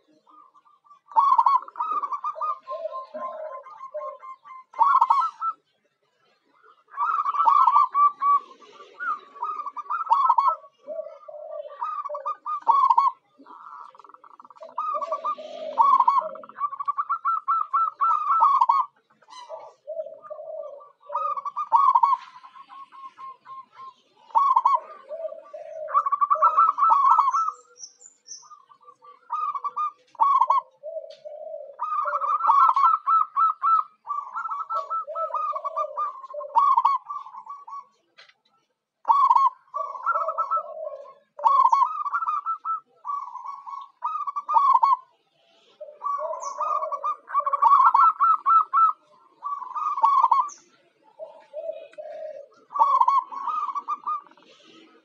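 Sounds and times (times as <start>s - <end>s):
dove cooing: 0.0s - 55.0s.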